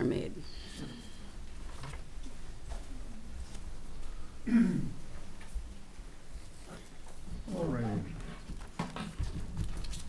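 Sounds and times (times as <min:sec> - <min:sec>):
soft knocks and shuffling: 0:00.7 - 0:04.2
footsteps across room: 0:00.7 - 0:04.4, 0:05.0 - 0:10.0.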